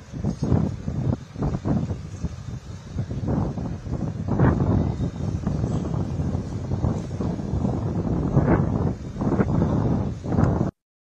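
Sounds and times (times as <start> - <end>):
wind buffeting microphone: 0.0 - 10.8.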